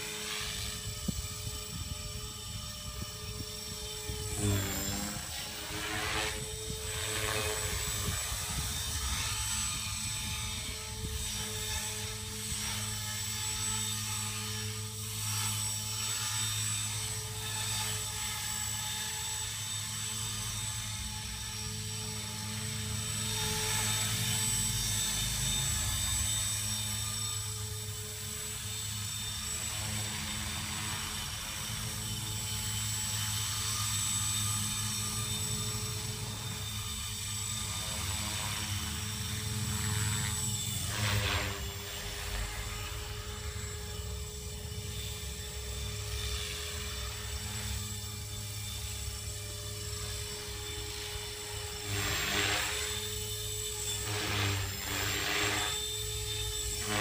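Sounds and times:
rc helicopter motor whine: 0.0 - 57.0.

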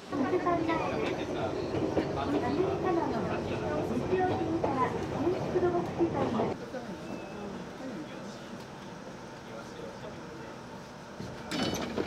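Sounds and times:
train running on track: 0.0 - 12.0
people's voices: 0.1 - 10.7.

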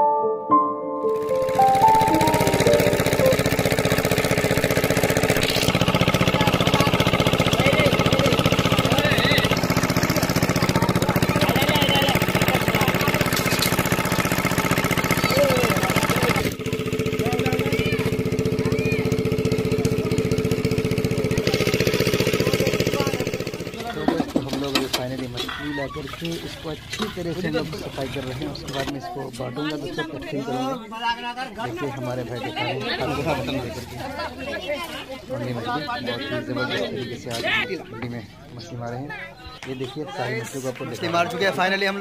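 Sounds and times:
engine running: 1.1 - 28.9.

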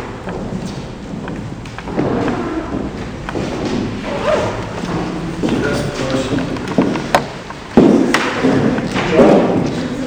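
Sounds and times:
footsteps on wooden stage floor: 0.0 - 10.0.

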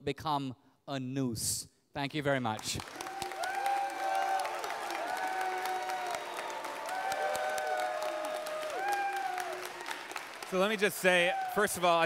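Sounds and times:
audience applauding: 2.6 - 12.0.

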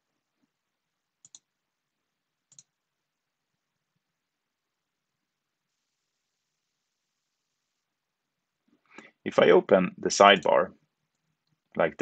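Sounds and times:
computer mouse clicks: 1.2 - 1.5, 2.5 - 2.8.

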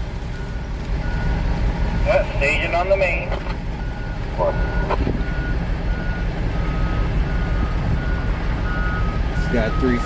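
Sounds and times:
diesel engine idling: 0.0 - 10.0
high warning beep: 2.5 - 10.0.

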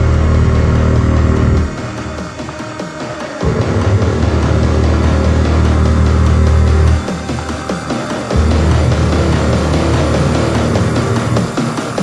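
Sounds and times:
deep bass note: 0.0 - 2.4, 3.4 - 11.6
industrial electronic music: 0.0 - 12.0
ticking beat: 0.0 - 12.0.

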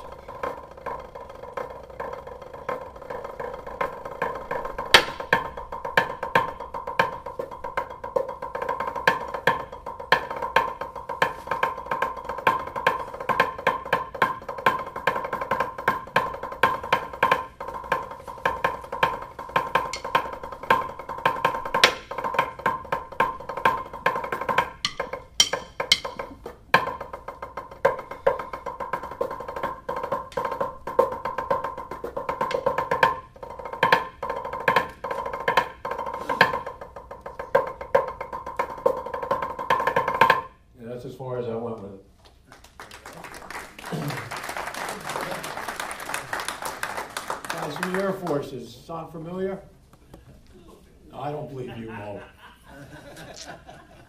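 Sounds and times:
snare drum strokes on practice pad: 0.0 - 40.6.

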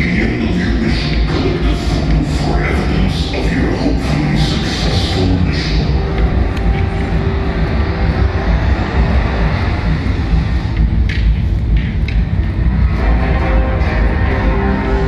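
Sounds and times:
low droning rumble with held tones: 0.0 - 15.0.

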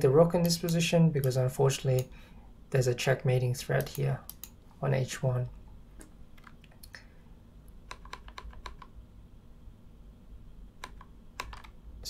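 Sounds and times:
computer keys clicking: 3.8 - 4.6, 6.4 - 7.0, 7.9 - 8.9, 10.8 - 11.8.

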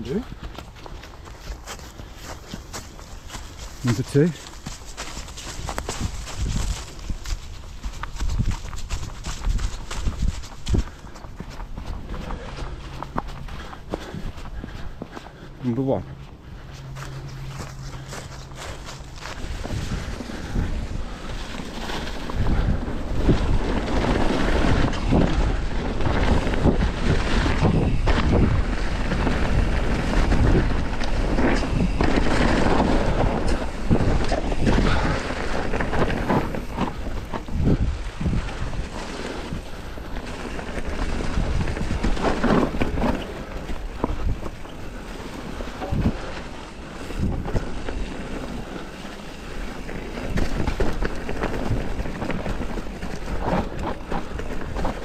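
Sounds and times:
tyres rolling over dirt: 0.0 - 55.0
wind buffeting microphone: 0.0 - 55.0
bike knocks and rattles: 17.5 - 55.0.

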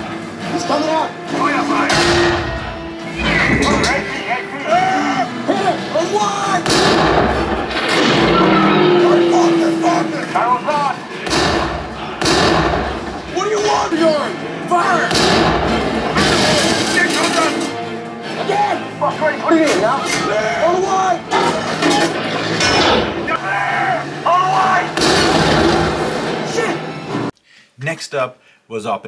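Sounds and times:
film music: 0.0 - 27.3
voices: 0.4 - 6.7, 7.9 - 25.0
gunfire: 6.6 - 8.8, 11.2 - 13.3, 15.1 - 17.1, 25.0 - 26.0
explosions: 6.7 - 9.2.

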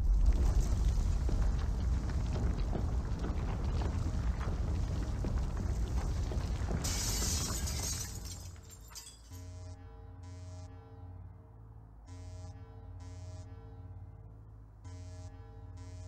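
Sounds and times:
deep rumbling with crackling: 0.0 - 8.9.

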